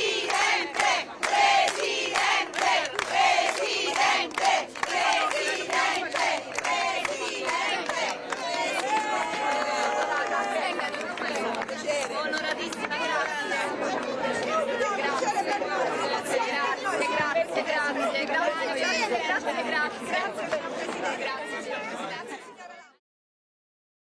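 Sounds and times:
crowd of women chattering: 0.0 - 23.0.

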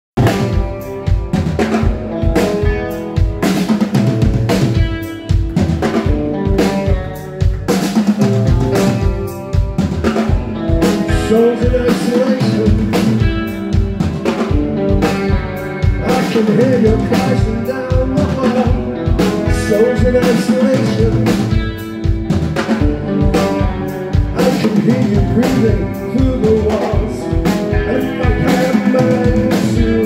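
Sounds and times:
bass guitar: 0.1 - 30.0
drum kit beating: 0.2 - 30.0
electric guitars: 0.2 - 30.0
live rock band playing: 0.2 - 30.0.

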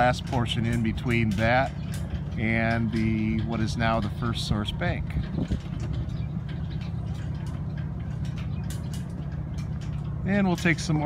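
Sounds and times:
low city rumble: 0.0 - 11.0.

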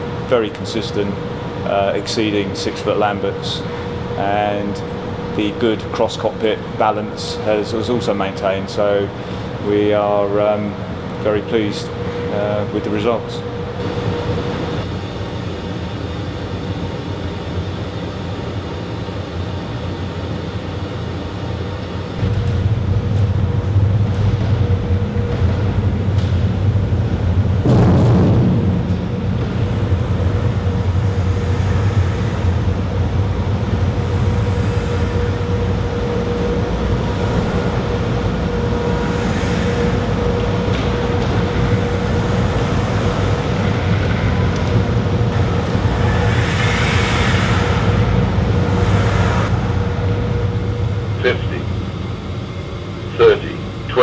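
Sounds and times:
faint steady hum: 0.0 - 54.0
flight simulator low rumble: 0.0 - 54.0.

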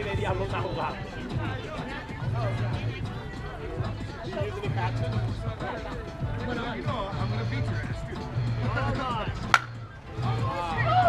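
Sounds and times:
bat hitting ball: 9.4 - 9.9.

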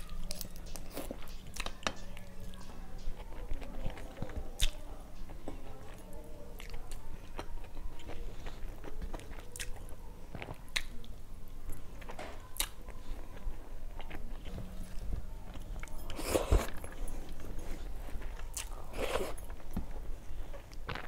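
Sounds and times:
chewing food: 0.0 - 21.0.

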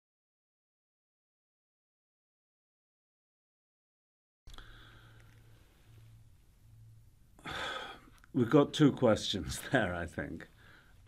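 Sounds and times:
man breathing in: 4.5 - 5.8, 7.4 - 8.2, 10.6 - 11.0
low hum: 4.5 - 8.0
man speaking: 8.3 - 10.6.

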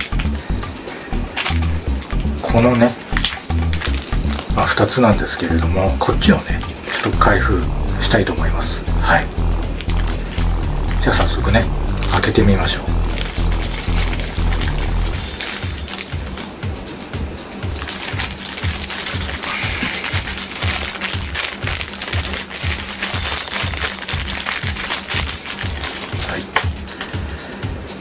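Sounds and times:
background music with steady beat: 0.0 - 28.0
plastic bag crinkling: 15.2 - 16.2, 17.8 - 27.0.

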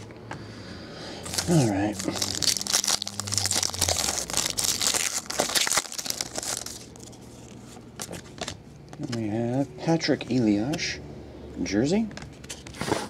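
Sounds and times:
foil wrapper tearing and crinkling: 1.2 - 7.1.

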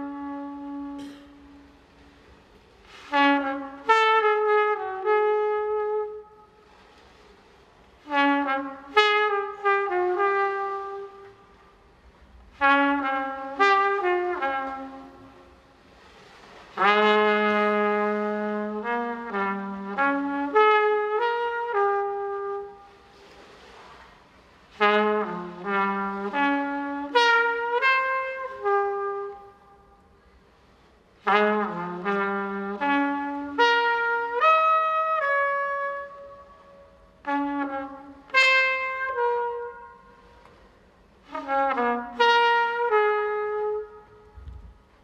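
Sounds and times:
trumpet playing jazz: 0.0 - 45.0.

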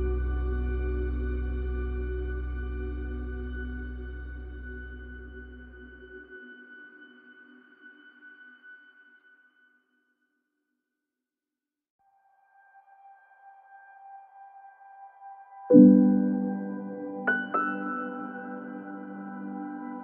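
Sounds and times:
soft sustained tone: 0.0 - 9.3, 12.4 - 20.0.

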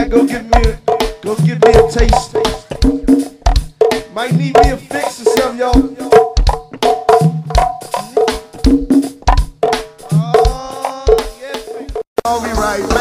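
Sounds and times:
congas: 0.0 - 13.0
low drum thuds: 0.0 - 13.0.

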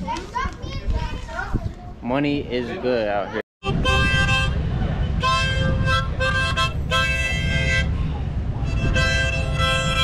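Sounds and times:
children talking and calling out: 0.0 - 2.0, 3.0 - 3.4.

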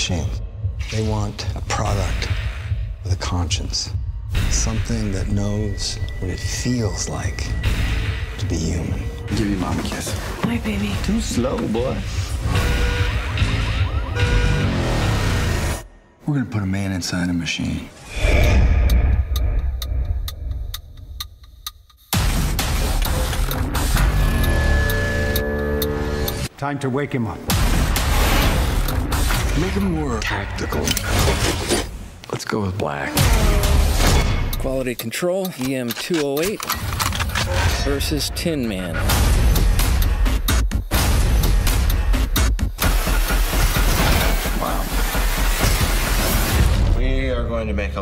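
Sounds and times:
action trailer music: 0.0 - 16.3, 17.9 - 26.6, 27.4 - 32.2, 33.1 - 48.0
clock-like ticking: 18.1 - 26.5, 33.5 - 36.6, 38.1 - 43.6.

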